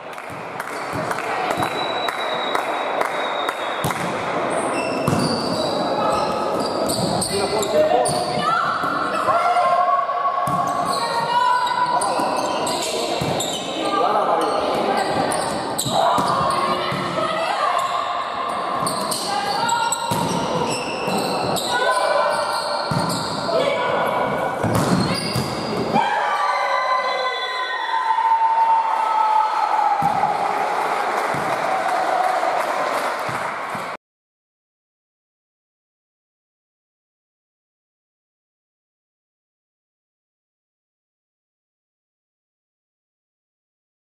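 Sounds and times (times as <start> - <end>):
players' voices echoing: 0.6 - 27.8
volleyballs struck and bouncing: 3.8 - 5.6, 18.7 - 21.6, 22.8 - 23.5, 24.2 - 26.0.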